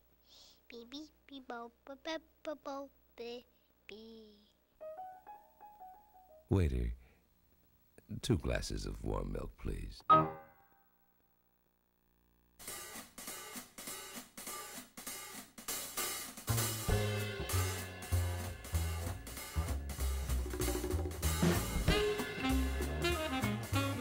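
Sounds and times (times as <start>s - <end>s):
jazz drum kit: 12.6s - 24.0s
low bass notes: 16.6s - 24.0s.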